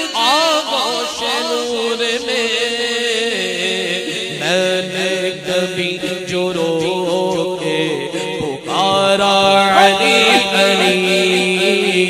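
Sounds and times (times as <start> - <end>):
man singing into a microphone: 0.0 - 12.0.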